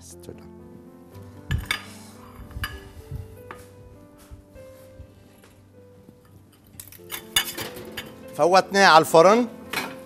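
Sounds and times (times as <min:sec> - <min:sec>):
soft background music: 0:00.0 - 0:10.0
dishes and utensils clinking: 0:01.5 - 0:03.7, 0:06.2 - 0:08.3, 0:09.7 - 0:10.0
loud clatter of dishes: 0:07.1 - 0:08.2, 0:09.7 - 0:10.0.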